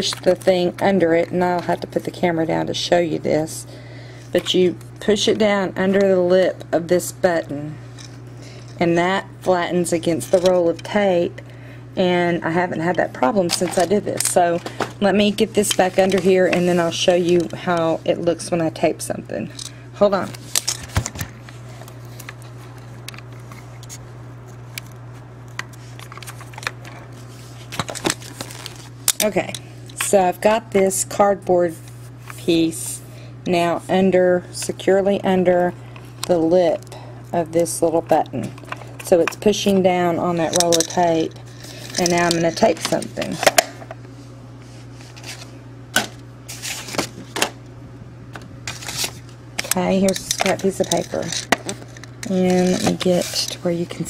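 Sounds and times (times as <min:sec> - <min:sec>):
steady low hum: 0:00.0 - 0:54.0
objects clicking and knocking: 0:49.6 - 0:53.6.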